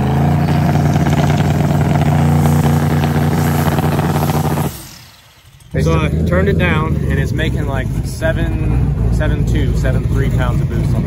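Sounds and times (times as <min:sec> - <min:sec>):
car engine on rev limiter: 0:00.0 - 0:11.0.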